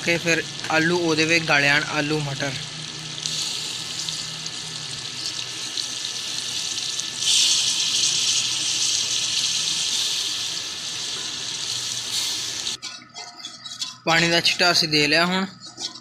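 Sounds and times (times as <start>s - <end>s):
curry sizzling in hot oil: 0.0s - 13.0s.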